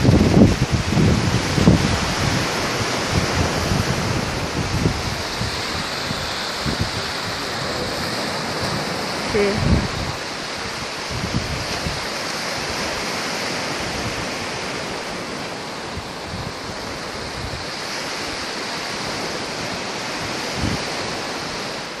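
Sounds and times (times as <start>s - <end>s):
sea waves washing over rocks: 0.0s - 22.0s.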